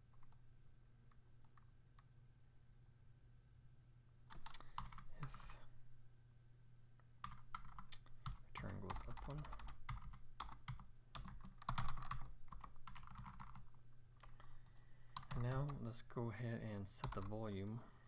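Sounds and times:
typing on keyboard: 0:04.3 - 0:05.3, 0:07.2 - 0:15.8, 0:16.9 - 0:17.8.

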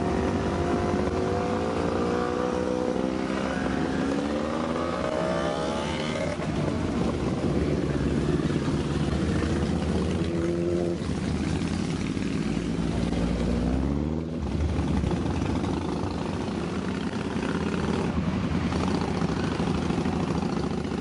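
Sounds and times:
motorcycles riding past: 0:00.0 - 0:21.0.

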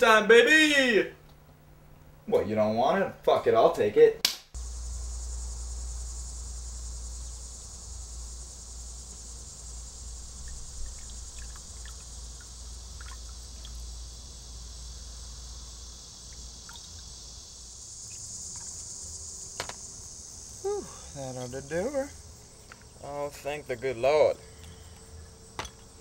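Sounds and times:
crickets chirping: 0:00.0 - 0:26.0.

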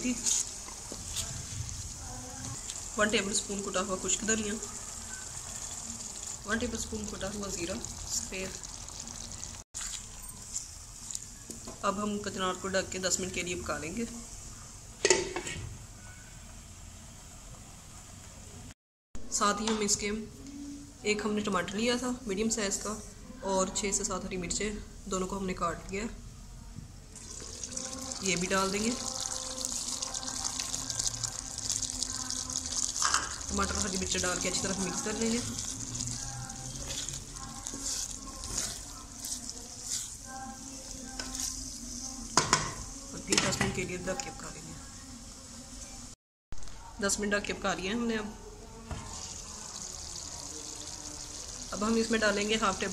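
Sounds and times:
meat sizzling under lid: 0:00.0 - 0:11.8, 0:27.1 - 0:46.2, 0:48.8 - 0:52.9
wooden spatula scraping a pan: 0:34.4 - 0:41.7.

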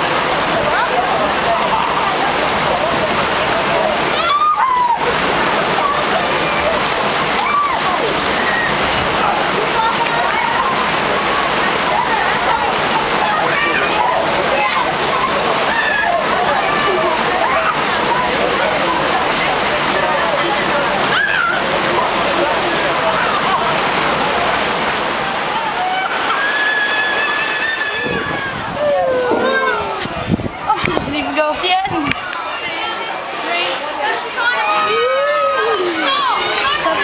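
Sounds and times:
distant voices and shouts: 0:00.0 - 0:24.3, 0:25.2 - 0:30.7, 0:32.2 - 0:37.0
churning pool water: 0:00.0 - 0:37.0.

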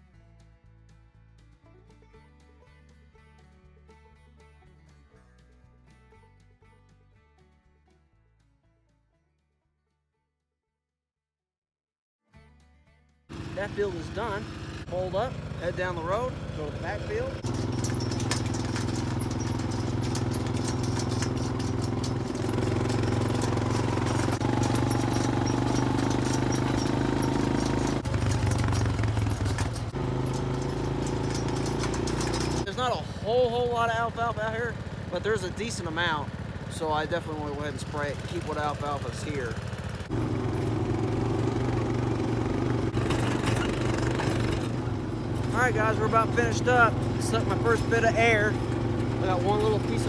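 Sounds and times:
quad bike engine running: 0:13.3 - 0:50.0
small clicks and rattles: 0:17.4 - 0:32.7.

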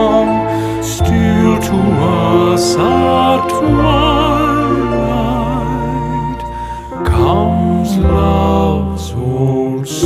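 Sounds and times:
men singing slow ballad: 0:00.0 - 0:10.0
sustained accompaniment: 0:00.0 - 0:10.0.

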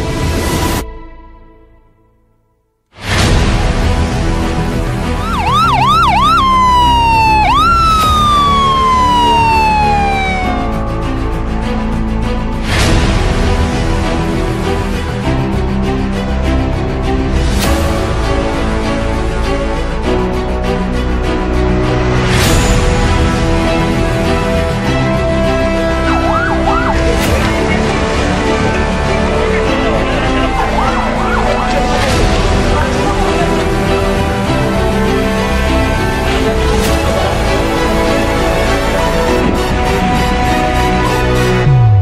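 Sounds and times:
background music with sustained notes: 0:00.0 - 0:42.0
ambulance siren: 0:05.0 - 0:11.5, 0:23.8 - 0:36.2
siren yelping: 0:05.2 - 0:10.9, 0:26.0 - 0:27.6, 0:30.6 - 0:32.0.

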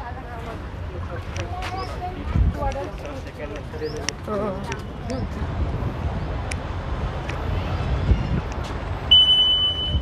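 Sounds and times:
metal detector beep: 0:09.1 - 0:10.0.

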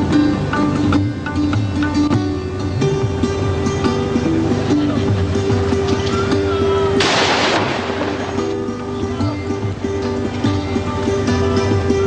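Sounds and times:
plucked guitar music: 0:00.0 - 0:12.0
burst of gunfire: 0:07.0 - 0:08.4.

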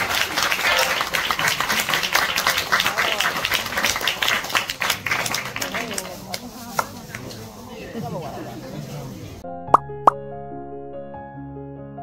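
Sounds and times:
sharp pop sound effect: 0:09.7 - 0:10.2.

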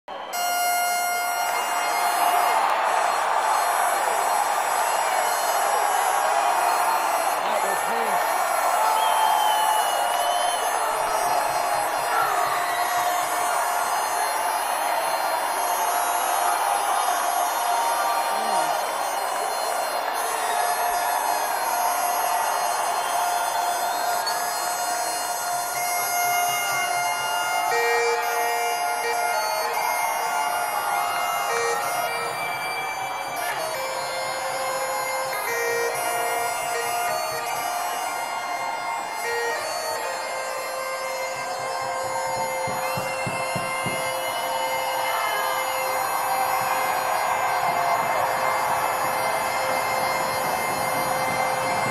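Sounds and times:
crowd noise: 0:00.0 - 0:51.9
bagpipes playing: 0:00.1 - 0:51.9.

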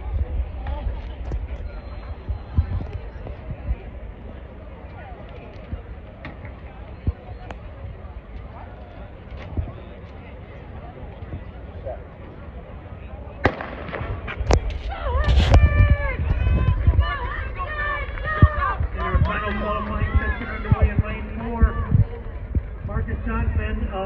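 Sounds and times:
low crowd noise: 0:00.0 - 0:24.0
spectators shouting and cheering: 0:14.3 - 0:23.0.

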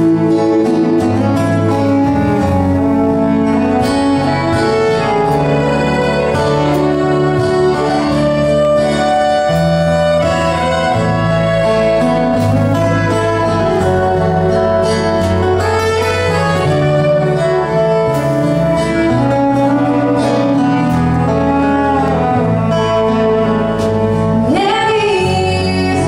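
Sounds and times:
country band playing: 0:00.0 - 0:26.0
fiddle: 0:00.0 - 0:26.0
woman singing: 0:24.4 - 0:26.0.

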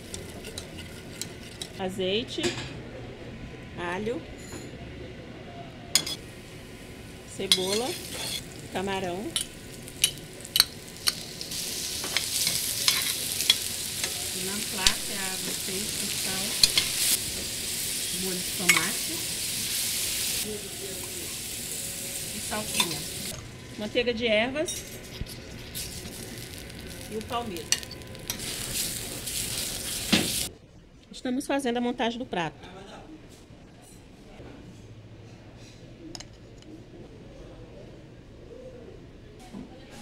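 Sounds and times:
low kitchen background: 0:00.0 - 0:40.0
metal spoon clinking on dish: 0:06.0 - 0:06.2, 0:07.5 - 0:08.4
food sizzling in pans: 0:06.0 - 0:24.0, 0:24.7 - 0:30.5
utensil clicking against pans: 0:09.4 - 0:11.2, 0:16.6 - 0:17.0.

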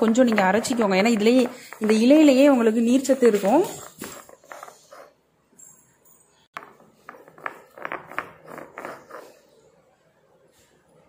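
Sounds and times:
stone roller scraping stone slab: 0:07.3 - 0:09.3.

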